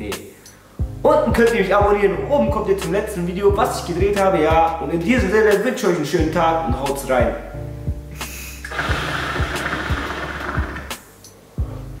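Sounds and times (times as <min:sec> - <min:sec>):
rushing hiss of smoke draw: 0:08.1 - 0:09.1.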